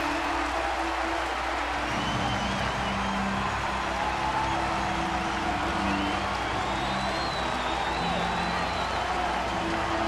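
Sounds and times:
crowd cheering and applauding: 0.0s - 10.0s
stadium music over loudspeakers: 0.0s - 10.0s.

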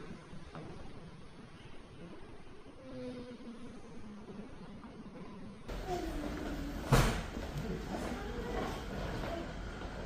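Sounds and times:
loud sharp thump: 6.8s - 7.4s.

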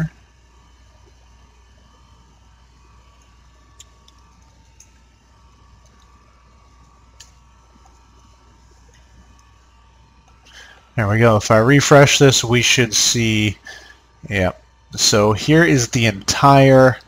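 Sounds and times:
faint hum and hiss: 0.0s - 17.0s.

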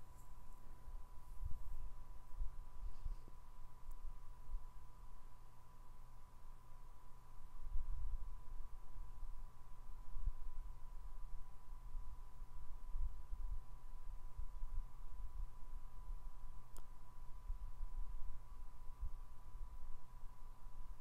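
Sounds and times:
faint high-pitched whine: 0.0s - 21.0s.

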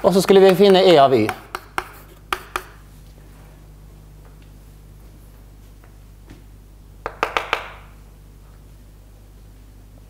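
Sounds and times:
taps on a chalkboard: 0.3s - 2.8s, 7.0s - 7.9s.

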